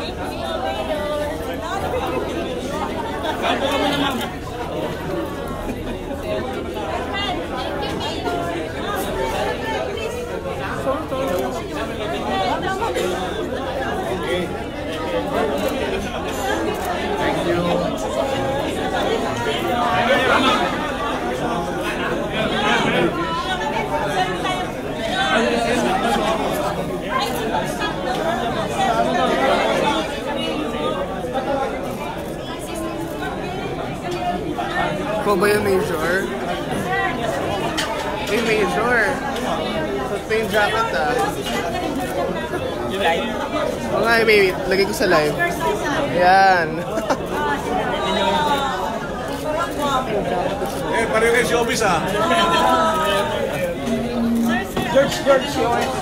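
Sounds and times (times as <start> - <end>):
chatter of many people: 0.0 - 56.0.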